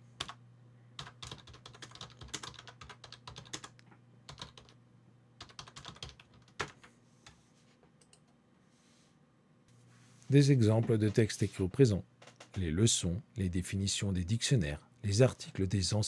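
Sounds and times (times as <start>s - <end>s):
low steady hum: 0.0s - 16.0s
computer keyboard typing: 0.2s - 0.4s, 1.0s - 4.8s, 5.4s - 6.9s.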